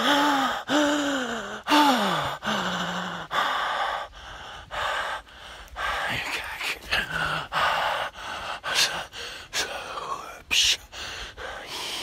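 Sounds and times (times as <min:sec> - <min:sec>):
man gasping breaths: 0:00.0 - 0:10.0, 0:10.7 - 0:12.0.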